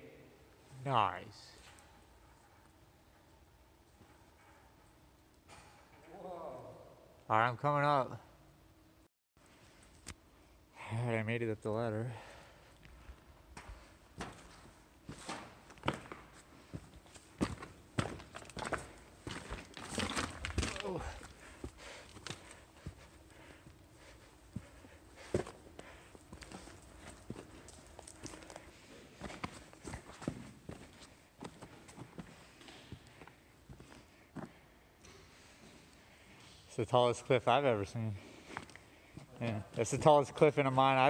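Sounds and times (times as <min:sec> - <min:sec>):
footsteps on loose rock: 0:17.3 - 0:23.0.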